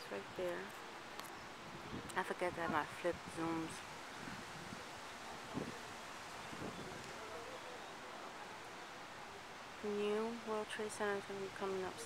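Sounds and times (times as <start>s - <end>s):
light wind on microphone: 0.1s - 9.8s.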